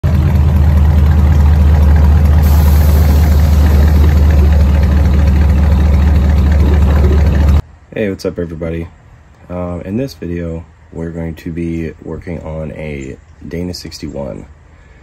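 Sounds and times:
car engine idling: 0.0s - 7.6s.

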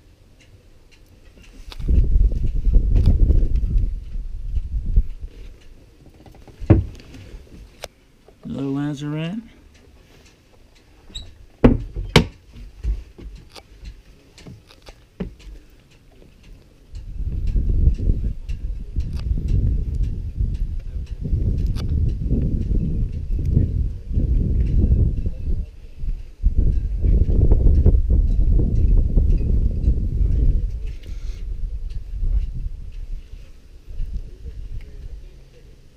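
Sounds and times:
wind buffeting microphone: 1.3s - 7.9s, 16.6s - 35.9s
sharp knocks: 6.6s - 7.0s, 11.6s - 13.4s.

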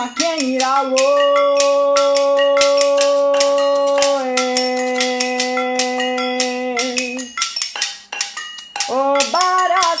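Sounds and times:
glass jars shaken and tapped: 0.0s - 10.0s.

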